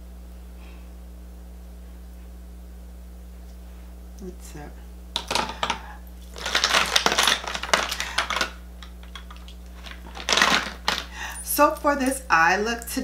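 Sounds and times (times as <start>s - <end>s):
makeup cases clattering and clicking: 5.2s - 11.1s.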